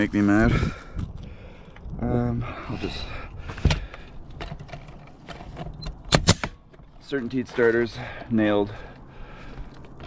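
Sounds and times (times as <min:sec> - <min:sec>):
pneumatic nailer shots: 0:06.1 - 0:06.6.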